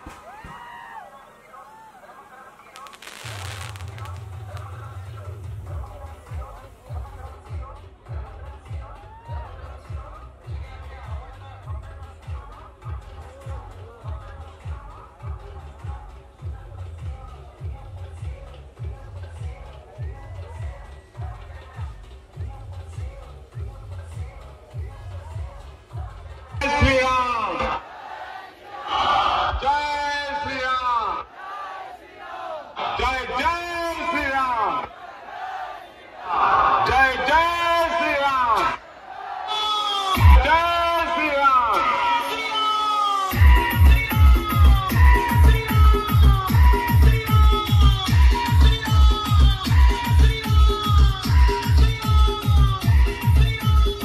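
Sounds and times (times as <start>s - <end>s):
pyrotechnic blast hissing: 0.0s - 7.0s
crowd voices: 0.0s - 54.0s
deep bass music: 3.1s - 26.8s, 43.3s - 54.0s
crowd of men chanting: 27.2s - 40.2s.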